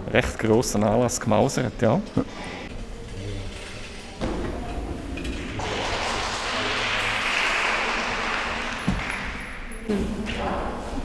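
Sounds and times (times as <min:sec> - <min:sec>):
small group clapping: 0:05.5 - 0:09.7.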